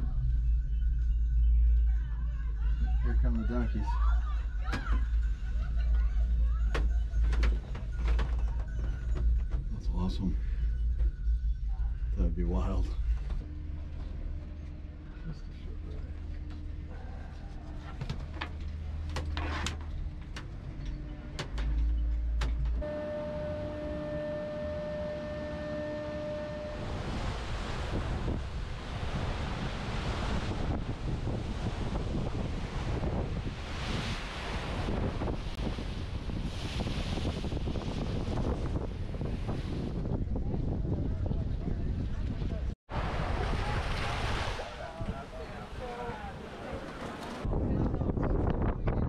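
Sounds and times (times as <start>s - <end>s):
gondola rumble and hum: 0.0s - 44.0s, 44.6s - 49.0s
steady pitched tone: 22.8s - 29.0s
sea rushing: 22.8s - 40.0s, 42.9s - 47.6s
wind buffeting microphone: 22.8s - 49.0s.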